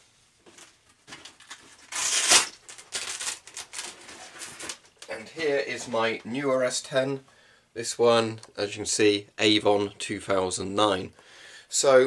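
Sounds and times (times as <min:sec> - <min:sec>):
rustling and crinkling handling: 0:00.4 - 0:06.7.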